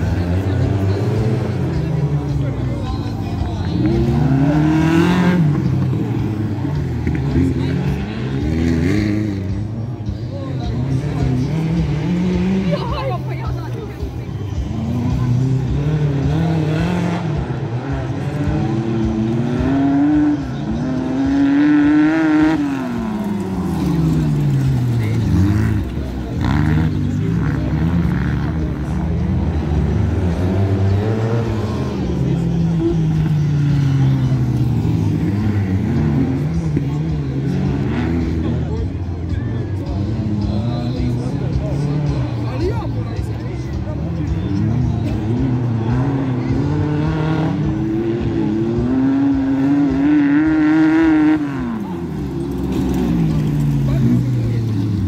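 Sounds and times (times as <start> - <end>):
racing buggy engines revving: 0.0 - 55.0.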